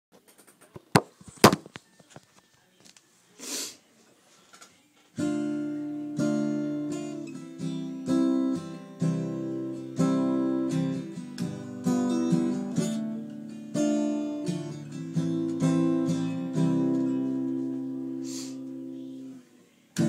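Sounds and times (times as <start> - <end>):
acoustic guitar strumming chords: 5.2 - 20.0.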